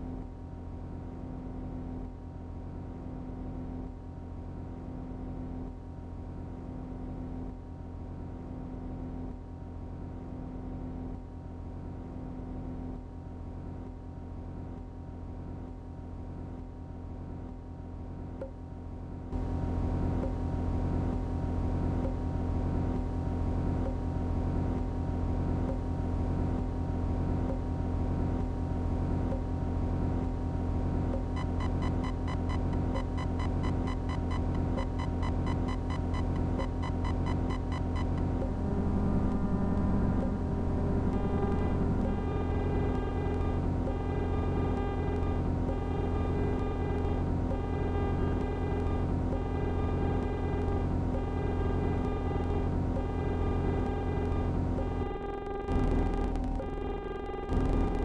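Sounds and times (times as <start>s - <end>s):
low electronic drone: 31.0s - 58.0s
steady electronic pulse: 31.2s - 58.0s
stuttering chopped texture: 36.0s - 58.0s
chopped repeating pitched notes: 36.5s - 58.0s.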